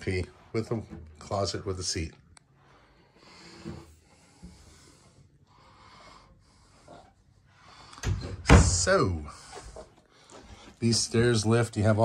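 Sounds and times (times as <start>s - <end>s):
faint breathing: 2.6s - 8.4s, 9.2s - 10.8s.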